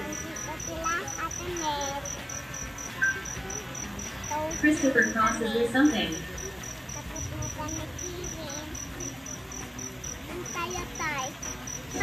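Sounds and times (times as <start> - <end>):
cricket chirping: 0.0 - 12.0
faint voices: 0.0 - 12.0.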